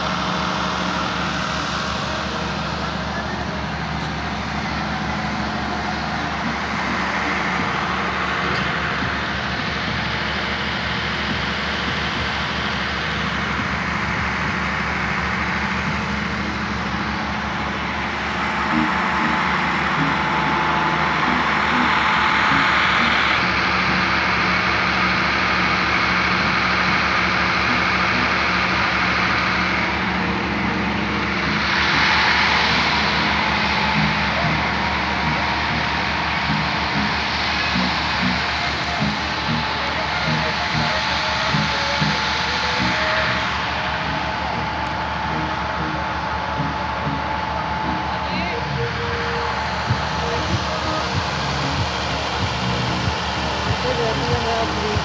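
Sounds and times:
faint music: 0.0 - 55.0
mechanical drone with low hum: 0.0 - 55.0.

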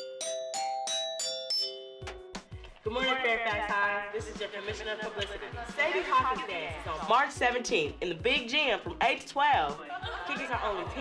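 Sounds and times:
chime bars ringing: 0.0 - 2.5
music with heavy drum beat: 2.1 - 11.0.

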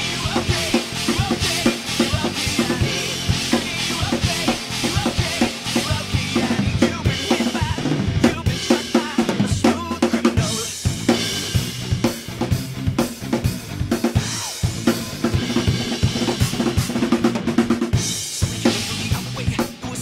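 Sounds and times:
acoustic drum kit groove: 0.0 - 20.0
pop backing track with bass: 0.0 - 20.0.

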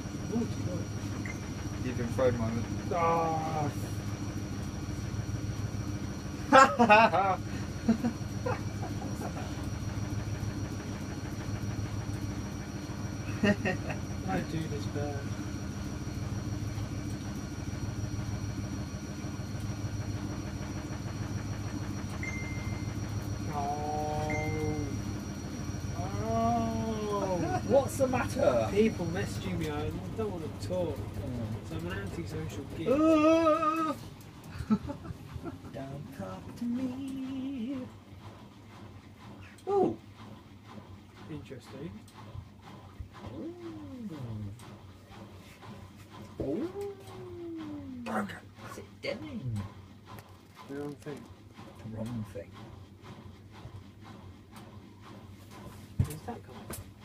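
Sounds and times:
washing machine running: 0.0 - 57.0
faint high steady tone: 24.2 - 25.0.

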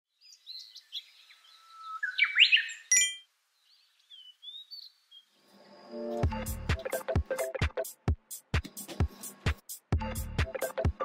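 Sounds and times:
birds chirping: 0.2 - 6.3
bright ding: 2.9 - 3.3
music: 5.6 - 11.0.

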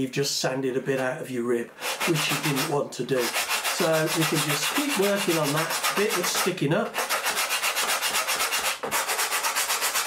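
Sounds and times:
sandpaper rubbing on wood: 1.8 - 10.0.

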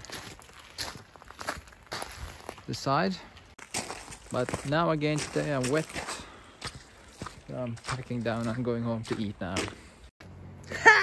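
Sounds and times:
soft footsteps: 0.0 - 10.0.

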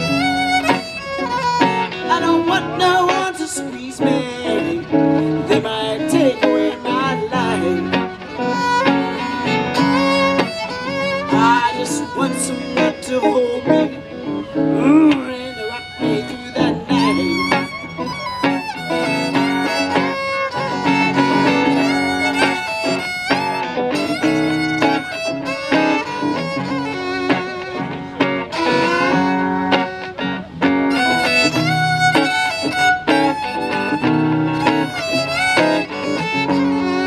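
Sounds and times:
amplified violin solo: 0.0 - 37.0
guitar accompaniment: 0.0 - 37.0.

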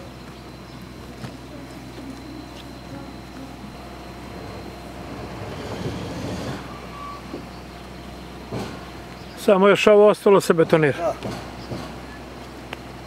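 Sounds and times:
traffic engine hum: 0.0 - 13.0
vehicle passing: 1.8 - 9.0.

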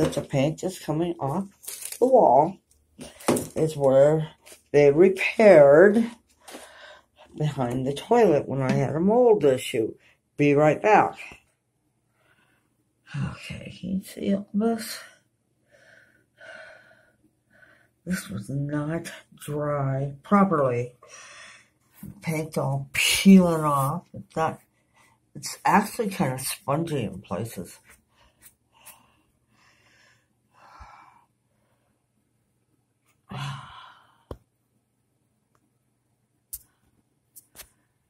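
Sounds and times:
person breathing: 6.4 - 7.3, 12.1 - 12.8, 15.6 - 18.0, 21.0 - 21.8, 28.1 - 32.1, 33.3 - 34.3.

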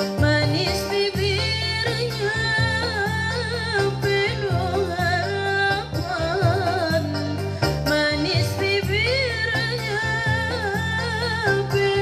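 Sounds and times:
low backing track: 0.0 - 12.0
woman singing with vibrato: 0.0 - 12.0.

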